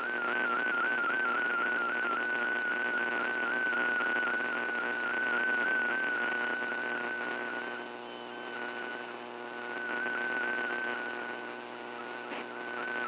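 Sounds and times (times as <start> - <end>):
shortwave hiss and static: 0.0 - 13.0.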